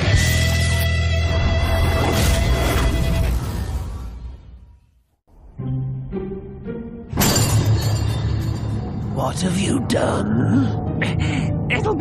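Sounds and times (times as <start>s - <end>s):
dramatic background music: 5.4s - 12.0s
glass shattering: 7.1s - 8.8s.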